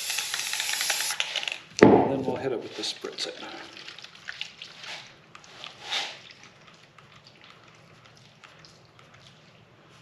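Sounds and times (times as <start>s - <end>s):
spray paint can hissing: 0.0s - 1.3s.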